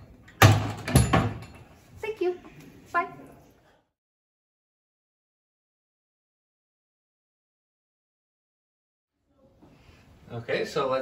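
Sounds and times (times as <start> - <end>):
wooden cupboard doors banging shut: 0.4 - 1.4.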